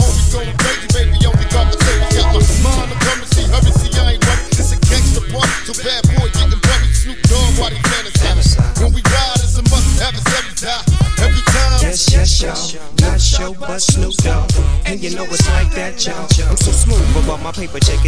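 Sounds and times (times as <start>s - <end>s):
rapping over a beat: 0.0s - 18.0s.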